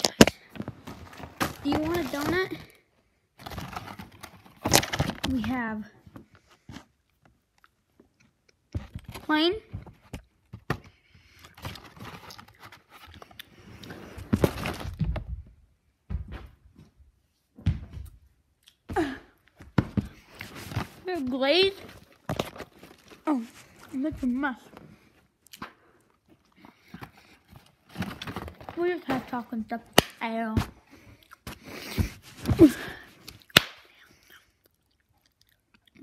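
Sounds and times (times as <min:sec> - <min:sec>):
chewing and mouth noises: 0:31.2 - 0:31.5, 0:33.3 - 0:36.0.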